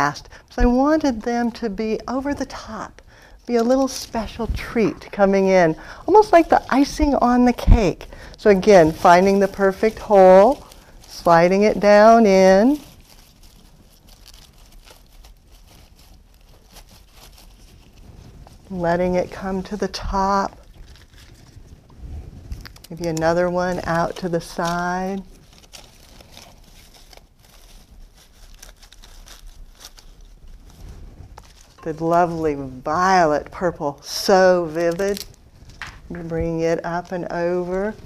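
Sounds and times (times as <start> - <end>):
leaves and stems rustling: 0.0 - 38.0.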